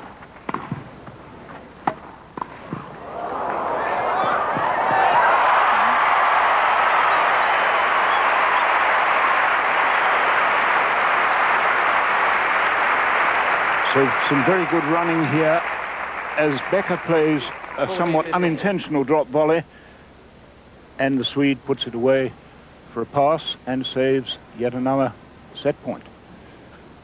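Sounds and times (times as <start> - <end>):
tennis ball struck by rackets: 0.4 - 0.9, 1.8 - 2.9
crowd applause: 3.0 - 18.8.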